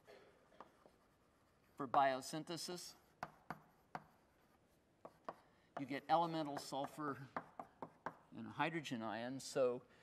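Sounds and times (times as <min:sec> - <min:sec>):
writing taps on a surface: 0:03.2 - 0:04.2, 0:05.0 - 0:08.3.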